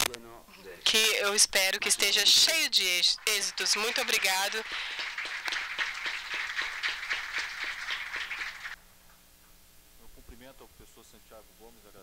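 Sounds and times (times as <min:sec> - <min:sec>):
audience applauding: 0:00.9 - 0:08.8.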